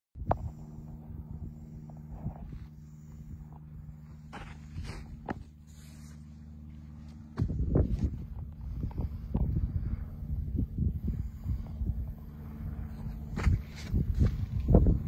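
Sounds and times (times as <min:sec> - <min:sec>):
loud rumble: 0:00.2 - 0:15.0
low engine hum: 0:00.2 - 0:15.0.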